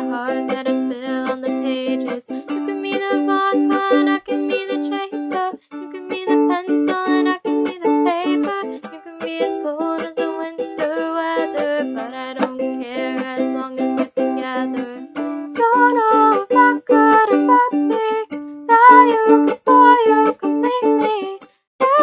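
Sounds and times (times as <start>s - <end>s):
ukulele plucked melody: 0.0s - 22.0s.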